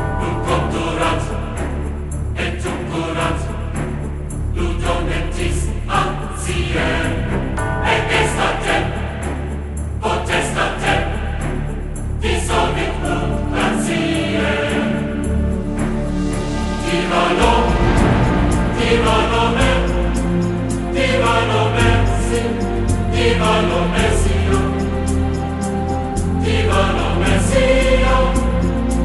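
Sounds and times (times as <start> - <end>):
choir singing: 0.0 - 29.0
sustained bass: 0.0 - 29.0.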